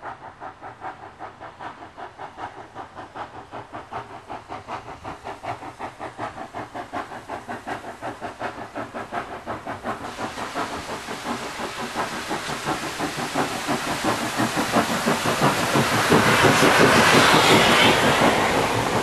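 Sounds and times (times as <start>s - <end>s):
steam hiss: 0.0s - 19.0s
steam locomotive exhaust beats: 0.0s - 19.0s.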